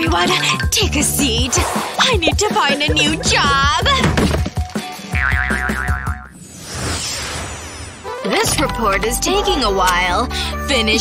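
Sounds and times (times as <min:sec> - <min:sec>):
wobbly cartoon boing: 0:02.9 - 0:04.0, 0:05.2 - 0:06.3
whoosh: 0:06.3 - 0:08.1.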